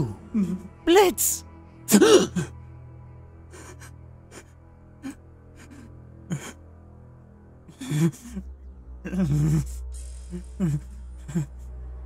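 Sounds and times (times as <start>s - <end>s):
low music drone: 0.0s - 12.0s
person gasping cry: 1.9s - 2.5s
sobbing breaths: 7.7s - 8.4s, 9.1s - 11.6s.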